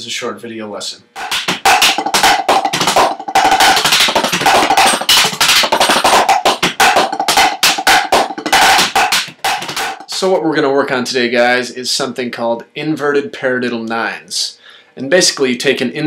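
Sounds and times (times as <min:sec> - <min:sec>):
drumsticks on rubber practice pads: 0:01.2 - 0:10.1.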